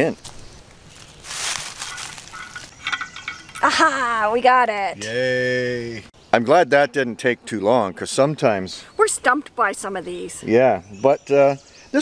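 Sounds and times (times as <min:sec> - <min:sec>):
rustling crunching scrape: 0:00.2 - 0:03.6.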